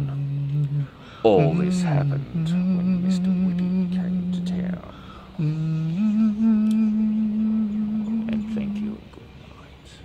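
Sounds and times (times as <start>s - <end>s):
person humming: 0.0s - 9.0s.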